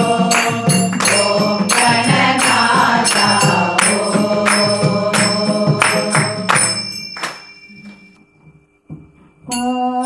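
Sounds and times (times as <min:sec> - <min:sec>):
drumming: 0:00.0 - 0:08.1
struck metal percussion ringing: 0:00.0 - 0:10.0
person singing: 0:09.5 - 0:10.0.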